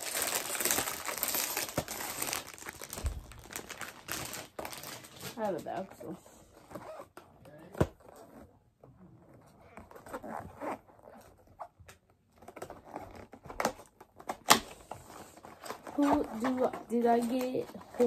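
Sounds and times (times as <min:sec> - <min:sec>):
cardboard packaging rustling: 0:00.0 - 0:08.4, 0:09.4 - 0:18.0.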